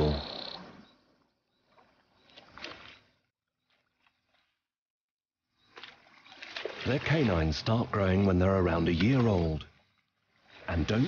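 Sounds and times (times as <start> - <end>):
water splashing and sloshing: 0.0 - 4.8, 5.4 - 11.0.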